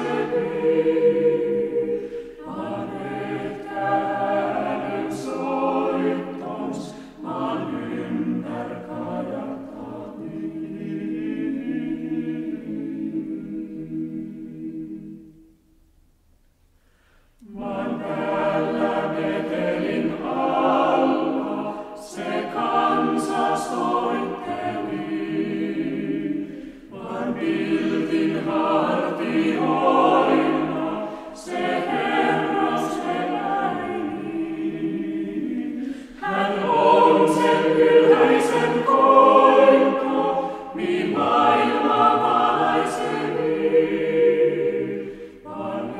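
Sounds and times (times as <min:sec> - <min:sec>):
choir singing a carol: 0:00.0 - 0:15.8, 0:17.2 - 0:45.9.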